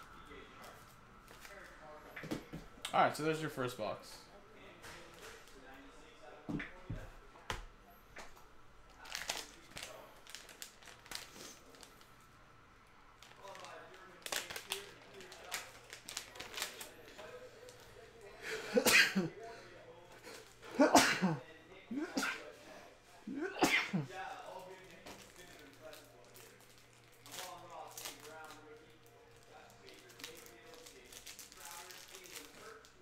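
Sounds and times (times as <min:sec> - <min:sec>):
man sneezing: 0:20.8 - 0:22.4, 0:23.3 - 0:24.1.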